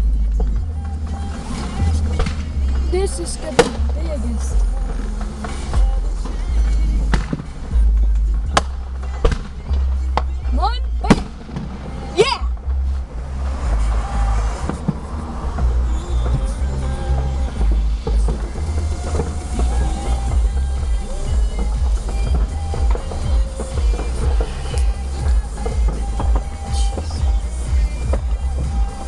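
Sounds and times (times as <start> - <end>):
low rumble: 0.0 - 29.0
fireworks bangs and pops: 0.3 - 29.0
rising firework whistles: 13.6 - 17.6.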